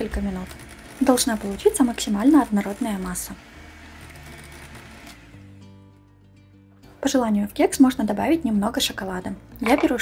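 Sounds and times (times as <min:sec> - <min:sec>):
electric hand mixer whirring: 0:00.0 - 0:05.6
soft background music: 0:00.0 - 0:10.0.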